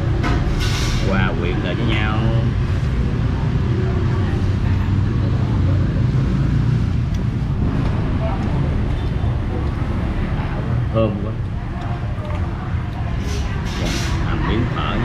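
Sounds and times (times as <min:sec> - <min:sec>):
street traffic rumble: 0:00.0 - 0:15.0.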